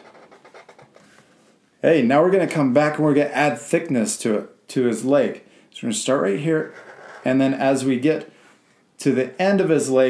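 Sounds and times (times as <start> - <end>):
marker scratching on paper: 0.0 - 1.2, 6.6 - 7.4.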